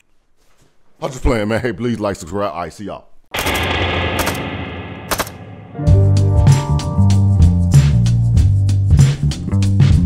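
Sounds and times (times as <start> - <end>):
rapid rifle gunfire: 3.4 - 4.4, 5.0 - 5.4.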